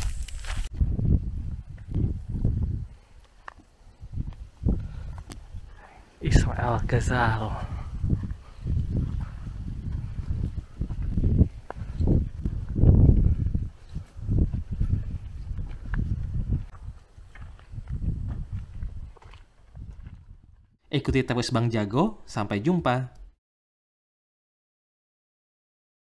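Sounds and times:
footsteps on dirt track: 0.0s - 5.7s, 7.4s - 20.8s
wind noise on microphone: 0.0s - 20.8s.

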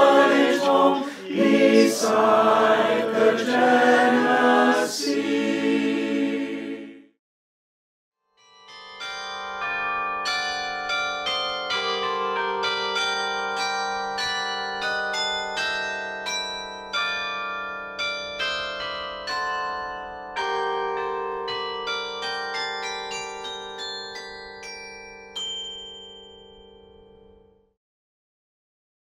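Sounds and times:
bells ringing a slow melody: 8.4s - 27.7s.

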